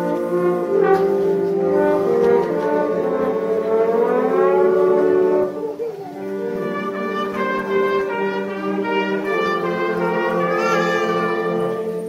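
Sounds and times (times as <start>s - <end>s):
wind band sustained brass chord: 0.0s - 12.0s.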